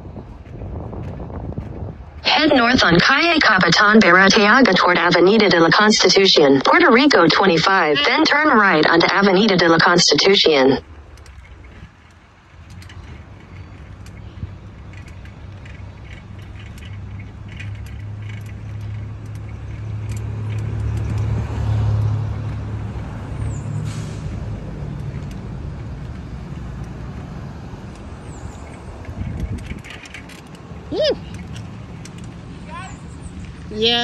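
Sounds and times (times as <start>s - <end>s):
wind on microphone: 0.0s - 3.2s, 24.2s - 34.0s
street traffic: 0.0s - 34.0s.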